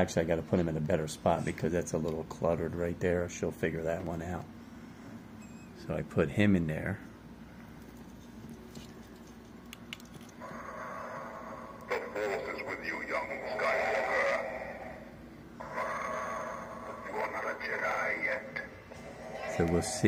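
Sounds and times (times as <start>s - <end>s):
tinny voice from small speaker: 11.9s - 15.0s, 15.6s - 18.7s.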